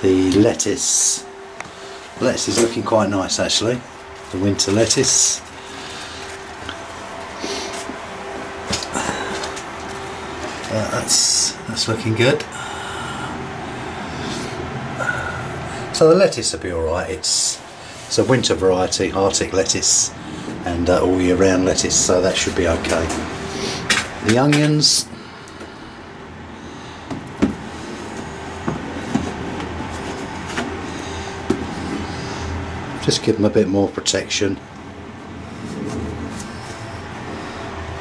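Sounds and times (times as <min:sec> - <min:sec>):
faint thin whine: 0:00.0 - 0:38.0
steady low rumble: 0:34.6 - 0:38.0.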